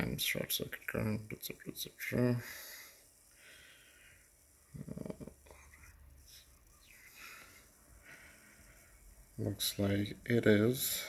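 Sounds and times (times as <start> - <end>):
quiet muttering: 0.0 - 11.0
faint breathing: 2.3 - 5.6, 6.2 - 9.4.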